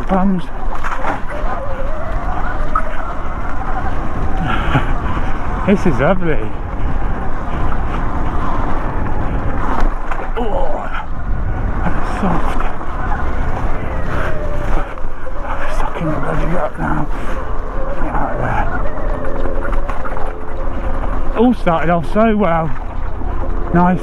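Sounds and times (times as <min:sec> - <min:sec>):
wind rumble on microphone: 0:00.0 - 0:24.0.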